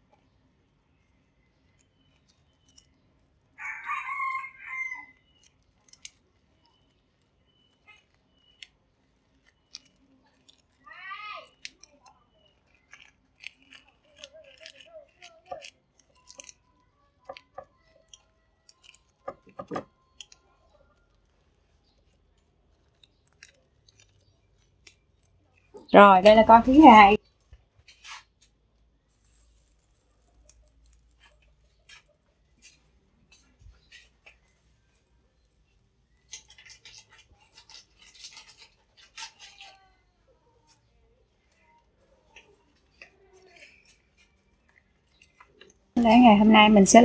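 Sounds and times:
rice paper clicks and crinkles: 0.0 - 46.8
rooster crowing: 3.6 - 5.2.

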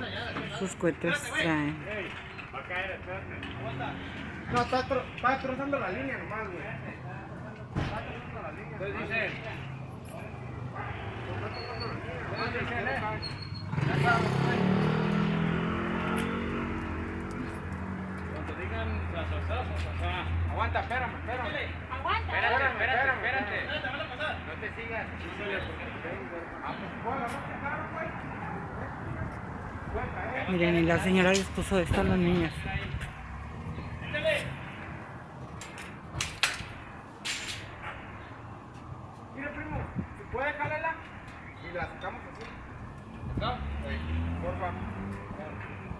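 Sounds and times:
vehicle engine passing by: 12.1 - 19.3, 42.8 - 45.9.

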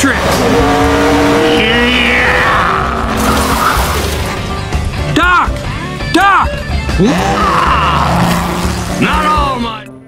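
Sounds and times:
cartoon race car engines: 0.0 - 4.2
background music: 0.0 - 10.0
rising and falling pitched sound: 0.4 - 4.0.

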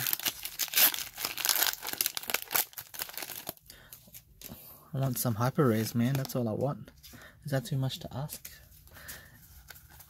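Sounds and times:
foil wrapper crinkling: 0.0 - 3.6.

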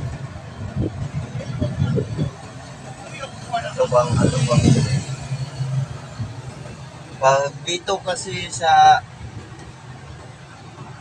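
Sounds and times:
vehicle engine and road rumble: 0.0 - 11.0
man speaking: 3.0 - 5.1, 7.2 - 9.0.

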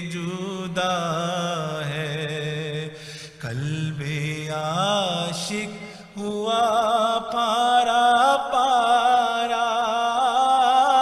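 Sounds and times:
man singing devotional song: 0.0 - 11.0
singer breathing: 2.9 - 3.4, 5.8 - 6.2.

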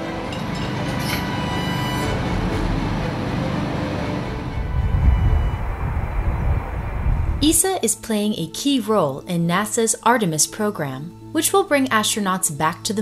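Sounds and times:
background music: 0.0 - 6.5, 7.3 - 13.0
heavy machinery rumble: 0.0 - 7.5.

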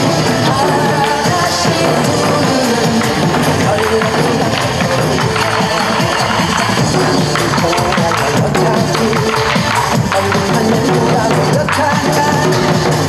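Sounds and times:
barrel drums beating: 0.0 - 13.0
recorded backing music: 0.0 - 13.0.

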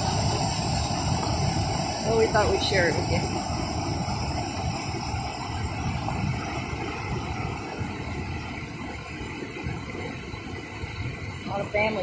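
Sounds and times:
water pouring over a dam: 0.0 - 12.0.

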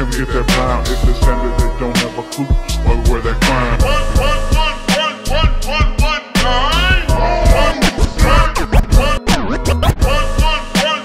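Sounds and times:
hip-hop beat: 0.0 - 11.0
record scratching: 6.8 - 10.1.

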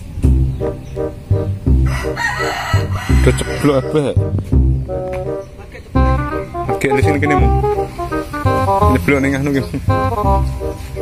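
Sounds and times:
music with steady low beat: 0.0 - 11.0
rooster crowing: 1.8 - 4.2.

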